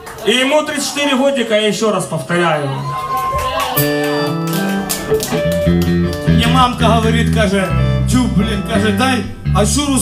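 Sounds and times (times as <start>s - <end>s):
electric guitar held notes: 3.8s - 9.9s
low bass line: 5.0s - 10.0s.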